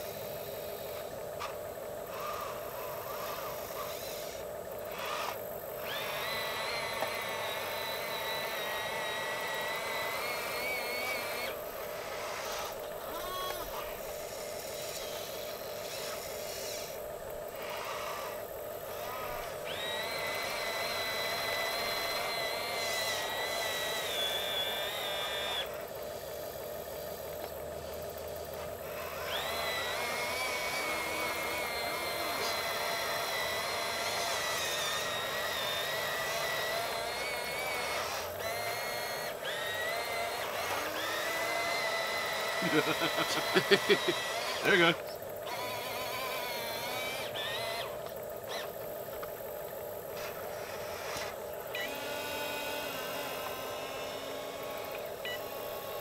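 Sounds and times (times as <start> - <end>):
small electric motors whining: 0.0 - 56.0
steady low hum: 0.0 - 56.0.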